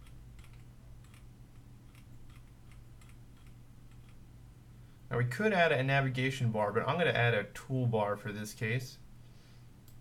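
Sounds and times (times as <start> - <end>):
computer mouse or keyboard clicking: 0.0 - 1.3, 1.9 - 4.2
steady low hum: 0.0 - 10.0.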